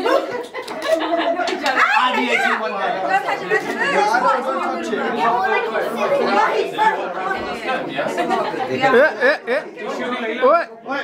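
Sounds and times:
group of people chattering: 0.0 - 11.0.

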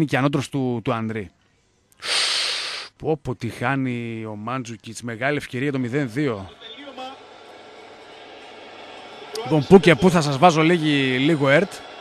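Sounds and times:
stadium crowd noise: 5.4 - 12.0.

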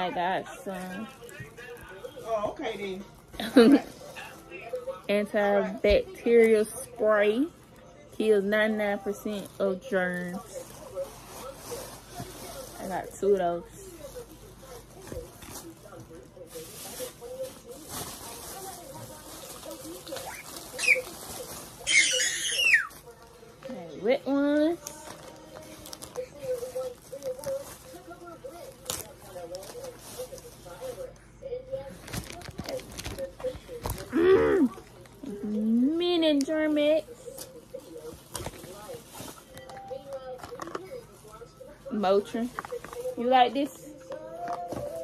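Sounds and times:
plastic bag and packaging rustling: 0.0 - 45.0
faint voice: 25.0 - 36.0
packaging knocks and rustles: 32.0 - 34.1, 37.4 - 41.4.

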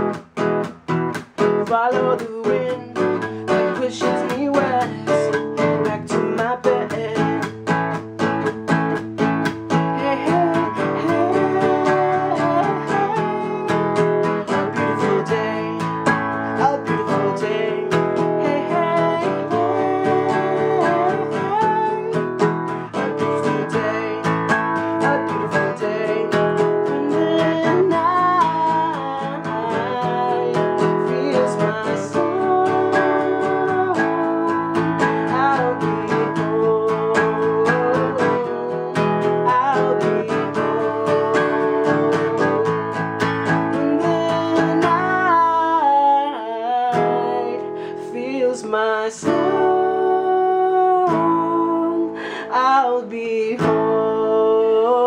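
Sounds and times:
strummed acoustic guitar: 0.0 - 55.0
man singing: 1.4 - 55.0.

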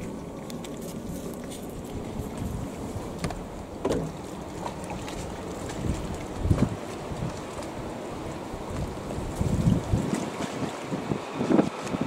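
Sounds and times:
wind on microphone: 0.0 - 3.7, 4.6 - 12.0
boat running through water: 0.0 - 12.0.

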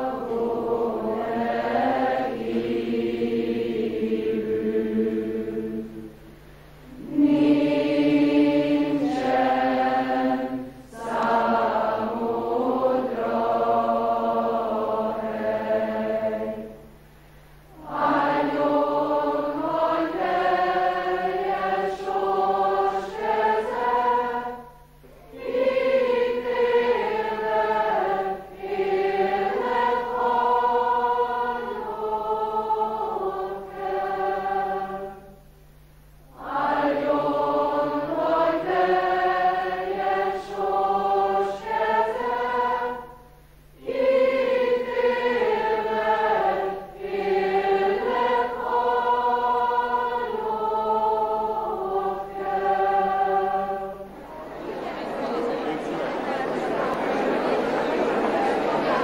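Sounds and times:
mixed choir singing: 0.0 - 17.0, 17.6 - 35.5, 36.3 - 59.0.

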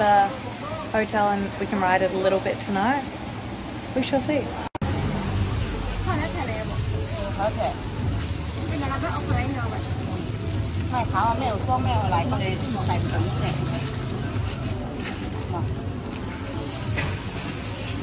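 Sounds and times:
dough sizzling in hot oil: 4.8 - 18.0
voices talking: 5.8 - 15.8.

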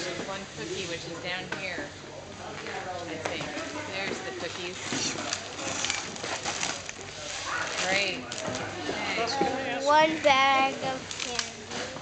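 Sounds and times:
plastic package rustling: 4.8 - 8.7
voices chattering: 6.8 - 12.0.

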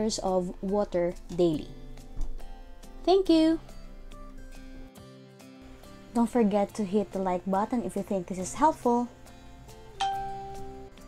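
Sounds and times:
soft background music: 0.0 - 11.0
chime-like ding: 10.0 - 10.7.

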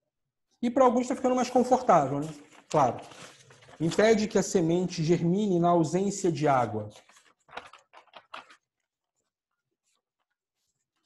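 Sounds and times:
paper sheets rustling: 0.9 - 11.0.

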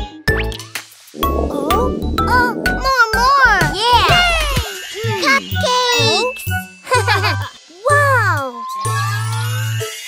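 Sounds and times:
cartoon music with bass: 0.3 - 7.5
swooping cartoon voice sounds: 1.2 - 4.6.

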